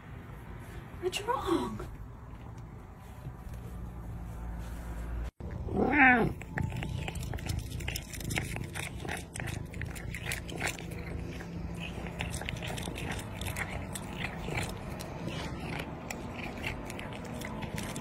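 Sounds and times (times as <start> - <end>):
cat crunching dry kibble: 5.4 - 18.0
cat meowing: 5.7 - 8.2.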